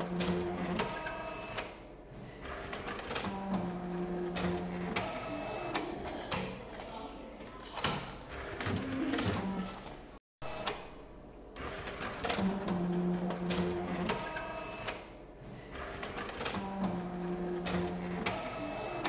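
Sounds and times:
printer feed motor humming: 0:00.0 - 0:06.7, 0:07.9 - 0:10.9, 0:11.6 - 0:19.0.

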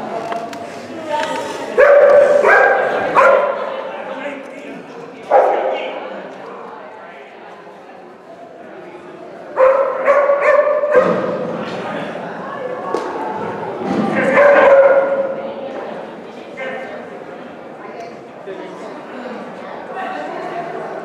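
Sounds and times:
dog barking excitedly: 0:01.8 - 0:03.7, 0:09.6 - 0:11.2.

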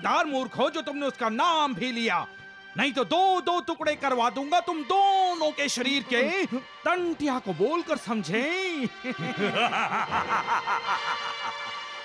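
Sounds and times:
background music: 0:00.0 - 0:12.0
man laughing: 0:08.8 - 0:12.0.

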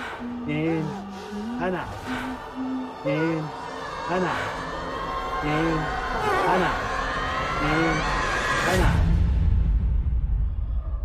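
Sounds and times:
person speaking: 0:00.0 - 0:04.5.

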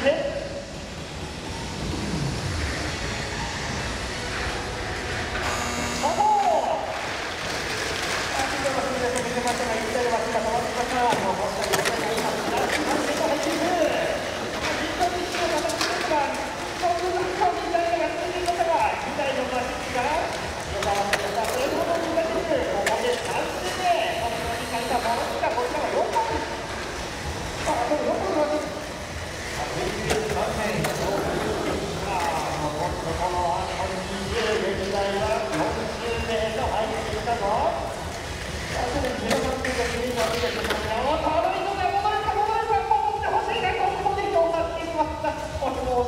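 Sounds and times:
busy hall noise: 0:00.0 - 0:46.0
person speaking: 0:08.2 - 0:26.7.

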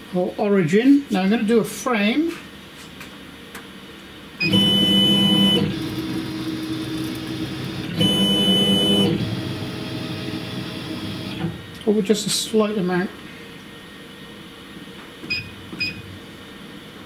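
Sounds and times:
laser motors whining: 0:04.4 - 0:11.6.

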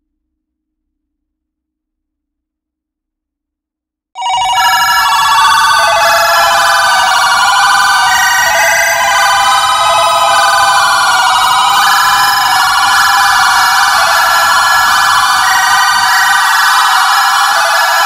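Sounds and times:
high ringing synthesizer tones: 0:04.2 - 0:18.0.

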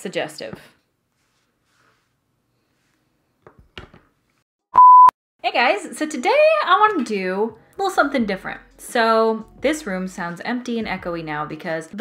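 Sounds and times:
electronic censor beep: 0:04.8 - 0:05.1.

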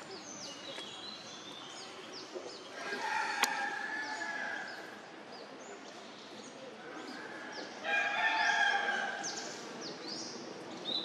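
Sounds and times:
small birds chirping: 0:00.0 - 0:07.8, 0:09.2 - 0:11.0.

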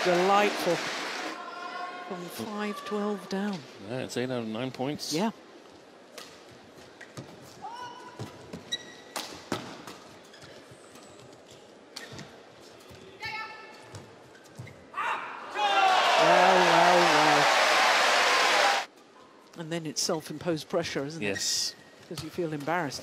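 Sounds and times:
shoe squeaks on court: 0:08.6 - 0:09.2
crowd cheering and shouting: 0:15.5 - 0:18.9.

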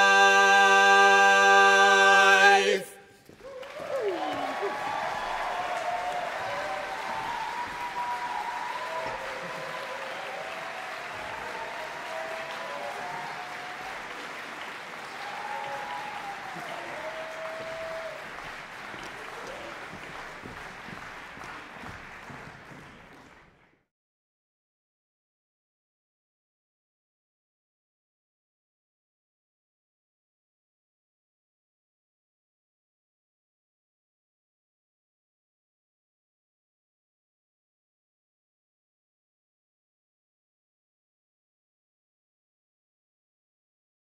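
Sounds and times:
a cappella quartet chord: 0:00.0 - 0:03.1
audience applause: 0:03.3 - 0:23.8
cheers and whoops: 0:03.4 - 0:20.1.

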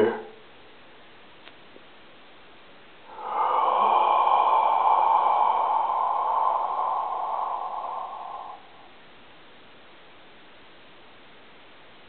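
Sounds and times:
man breathing out loudly: 0:03.0 - 0:09.2.

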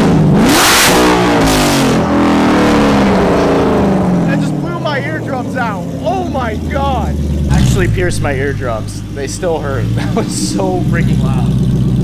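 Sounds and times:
loud car engine revving and idling: 0:00.0 - 0:12.0.

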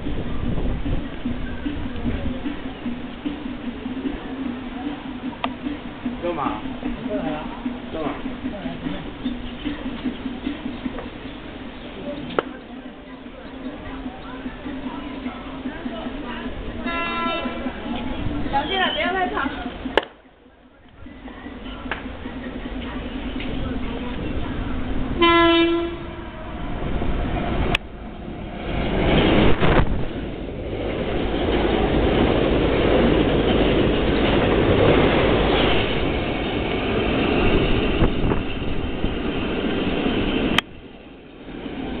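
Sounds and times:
rush of train cars passing: 0:00.0 - 0:20.0, 0:21.0 - 0:42.0
train horn blast: 0:16.8 - 0:17.7, 0:25.2 - 0:26.7.

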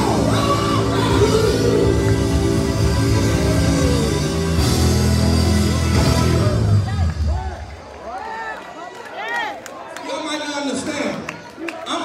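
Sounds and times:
crowd shouting and whooping: 0:00.0 - 0:12.0.

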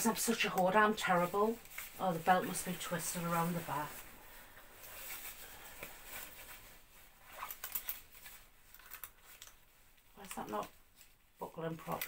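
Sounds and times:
padded coat fabric rustling: 0:00.0 - 0:08.6.

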